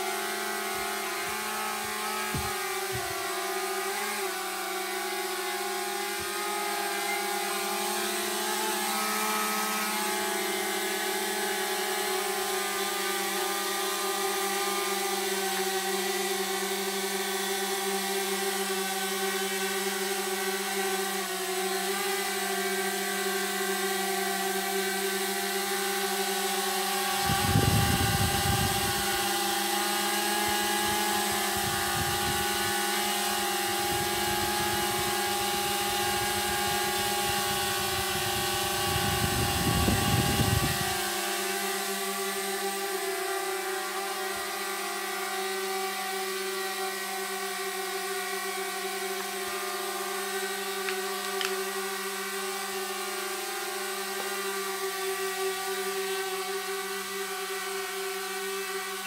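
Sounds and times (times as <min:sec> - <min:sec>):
drone propellers humming: 0:00.0 - 0:54.9.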